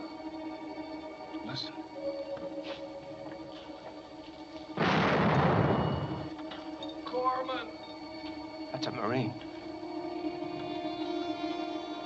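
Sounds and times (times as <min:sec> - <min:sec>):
quiet background music: 0:00.0 - 0:12.0
explosion with low rumble: 0:04.8 - 0:06.3.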